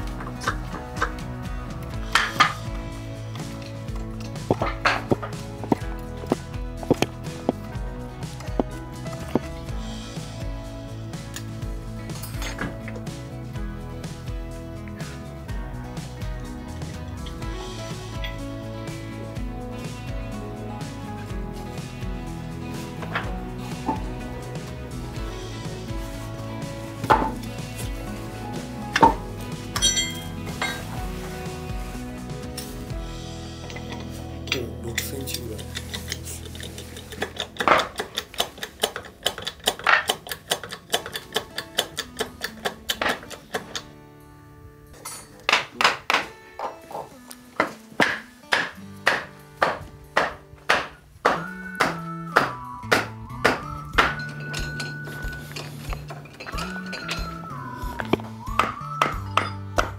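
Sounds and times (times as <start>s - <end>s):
instrumental background music: 0.0s - 59.9s.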